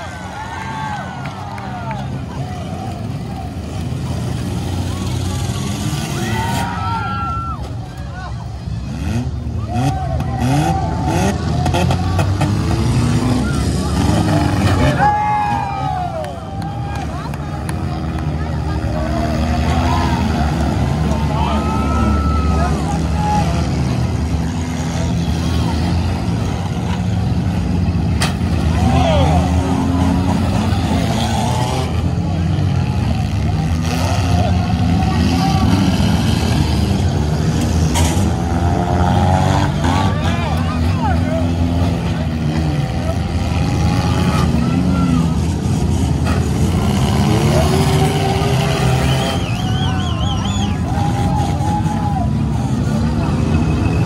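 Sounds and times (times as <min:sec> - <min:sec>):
car engines revving: 0:00.0 - 0:54.0
cars crashing: 0:00.0 - 0:54.0
crowd shouting and cheering: 0:00.0 - 0:54.0.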